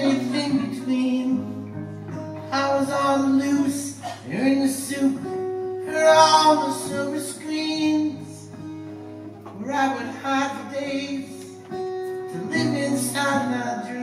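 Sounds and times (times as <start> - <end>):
man singing: 0.0 - 8.6, 9.4 - 14.0
acoustic guitar strumming: 0.0 - 14.0.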